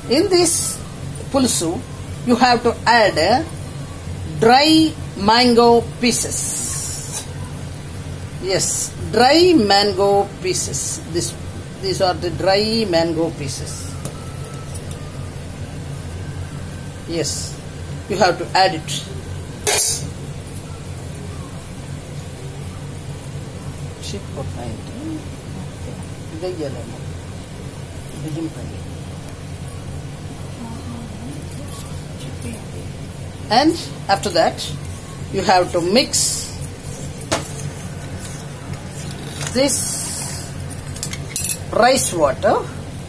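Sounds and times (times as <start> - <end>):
gas stove burner humming: 0.0 - 43.0.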